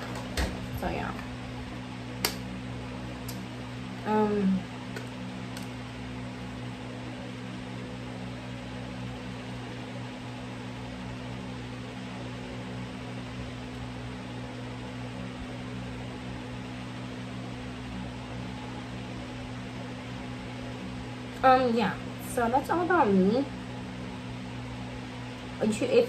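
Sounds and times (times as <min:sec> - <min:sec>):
low hum: 0:00.0 - 0:26.0.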